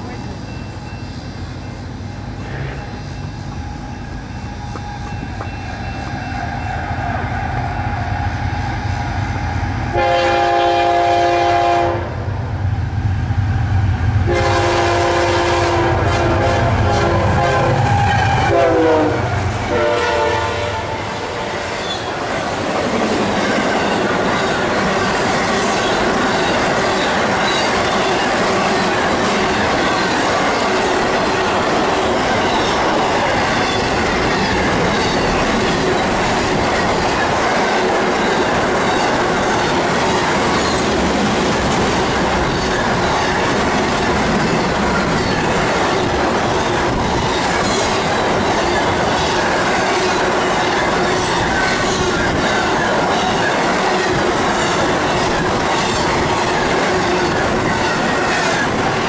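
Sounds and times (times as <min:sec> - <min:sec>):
freight train wheels on rails: 0:00.0 - 0:59.0
clicks from train wheels: 0:04.6 - 0:06.2.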